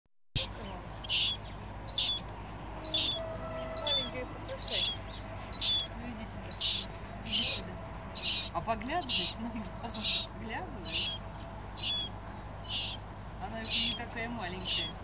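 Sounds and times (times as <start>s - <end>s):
gull calling: 0.4s - 15.0s.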